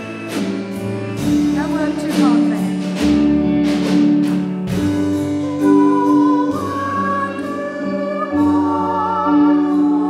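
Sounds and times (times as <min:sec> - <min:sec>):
drum kit with cymbal crashes: 0:00.0 - 0:07.7
sustained keyboard chords: 0:00.0 - 0:10.0.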